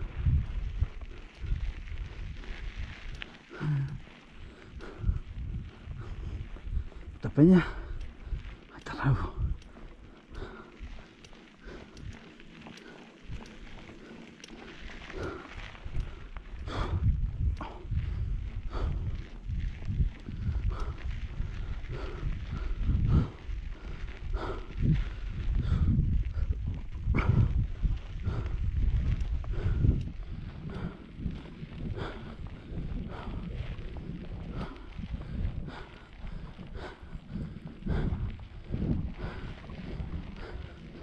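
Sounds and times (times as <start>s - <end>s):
low rumble: 0.0s - 12.3s
bike rattling over bumps: 0.0s - 41.0s
bike tyres rolling on gravel: 0.0s - 41.0s.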